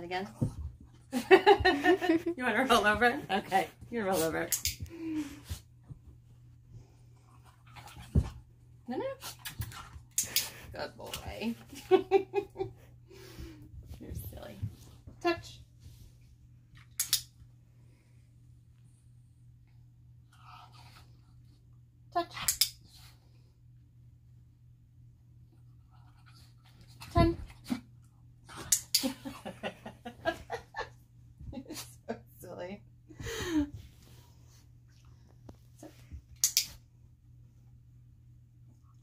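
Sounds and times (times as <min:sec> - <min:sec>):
low room hum: 0:00.0 - 0:39.0
clicker clicks: 0:36.4 - 0:36.7.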